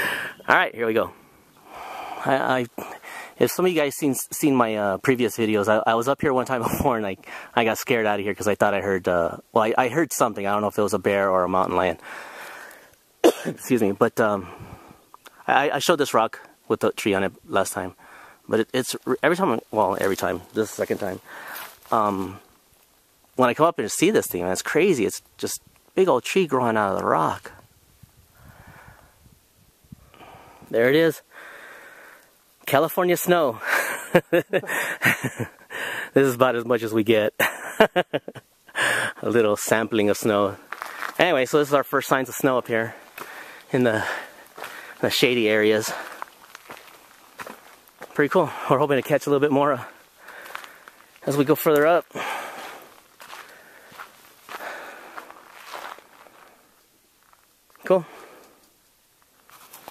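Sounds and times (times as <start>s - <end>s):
faint breath through nose: 0.0s - 0.4s, 1.1s - 3.4s, 7.2s - 7.6s, 12.0s - 13.0s, 14.4s - 15.3s, 18.0s - 18.5s, 21.2s - 21.9s, 28.3s - 32.4s, 35.6s - 36.2s, 42.9s - 45.0s, 49.9s - 51.2s, 52.1s - 55.4s, 58.0s - 58.8s
footsteps on dirt trail: 19.5s - 22.5s, 40.5s - 41.6s, 42.3s - 57.8s, 59.2s - 59.9s.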